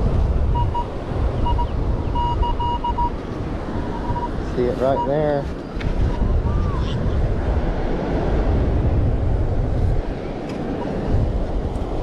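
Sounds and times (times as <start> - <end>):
surf on a beach: 0.0 - 12.0
wind buffeting microphone: 0.0 - 12.0
metal detector beep: 0.5 - 3.2, 3.9 - 5.2.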